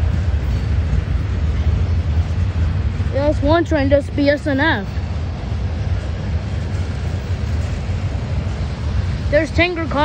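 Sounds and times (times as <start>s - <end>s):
freight train wheels rumbling: 0.0s - 10.0s
train noisy hiss: 0.0s - 10.0s.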